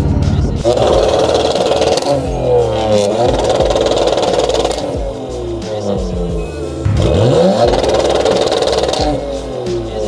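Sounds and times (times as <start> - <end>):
car engine revving hard: 0.6 - 10.0.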